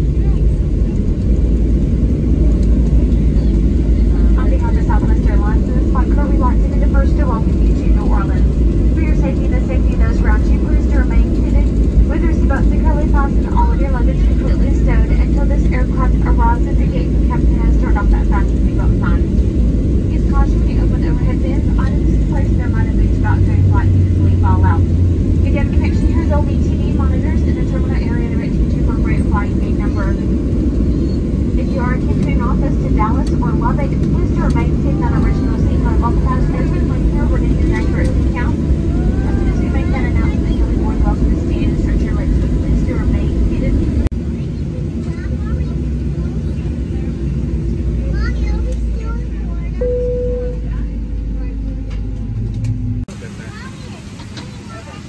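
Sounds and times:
indistinct voices: 0.0 - 44.1
airplane cabin low rumble: 0.0 - 55.0.

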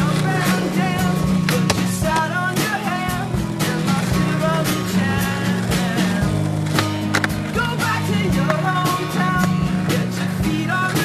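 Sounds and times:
background music: 0.0 - 11.0
skateboard clacks: 0.0 - 11.0
skateboard wheels rolling on asphalt: 0.0 - 11.0.

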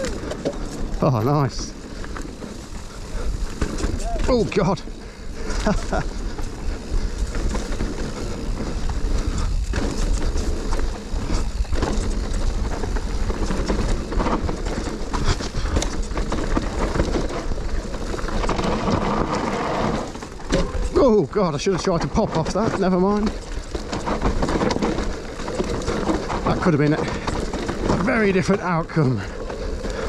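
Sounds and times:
bike rattling over bumps: 0.0 - 30.0
tyre and wind rumble: 0.0 - 30.0.

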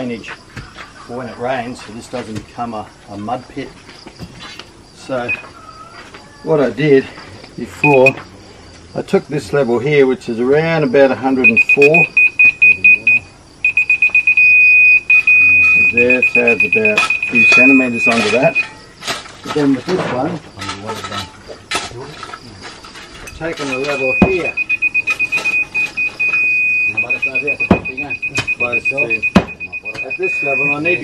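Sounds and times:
laser level receiver beeping: 5.3 - 5.5, 7.8 - 8.2, 11.4 - 18.8, 23.6 - 31.0
background voices: 6.5 - 12.1, 15.2 - 18.6
sharp knocks: 23.6 - 26.0, 27.5 - 30.2.

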